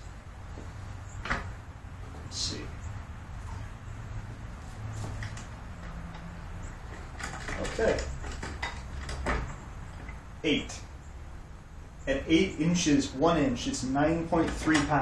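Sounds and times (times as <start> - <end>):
steady low hum: 0.0 - 14.6.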